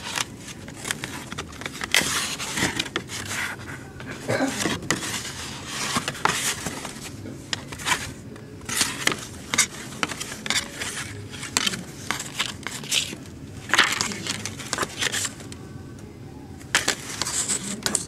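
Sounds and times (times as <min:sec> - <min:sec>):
photo cards sliding and scraping: 0:00.0 - 0:15.6, 0:16.6 - 0:18.0.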